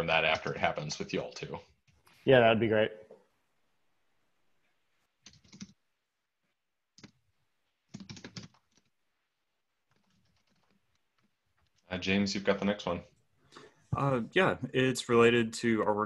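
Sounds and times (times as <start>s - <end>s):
computer keyboard typing: 5.2s - 5.8s, 7.0s - 7.2s, 7.9s - 8.9s, 9.9s - 11.8s.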